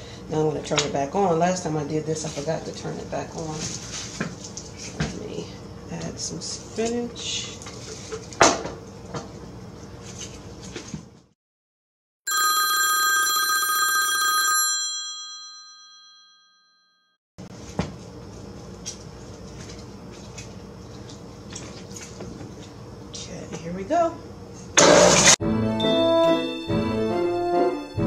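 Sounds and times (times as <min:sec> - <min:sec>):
phone alarm chime: 0:12.3 - 0:17.1.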